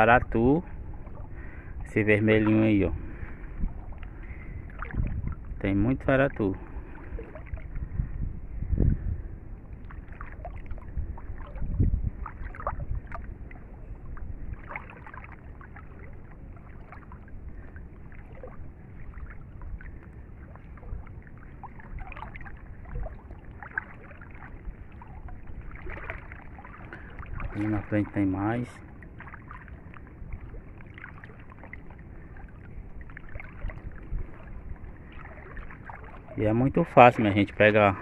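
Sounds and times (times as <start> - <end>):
water lapping against a boat: 0.0 - 38.0
small splashes and ticks: 0.9 - 7.9, 9.6 - 38.0.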